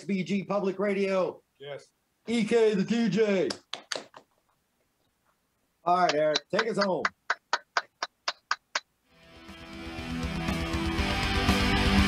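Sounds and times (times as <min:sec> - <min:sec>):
sharp count-in clicks: 0:06.0 - 0:08.9.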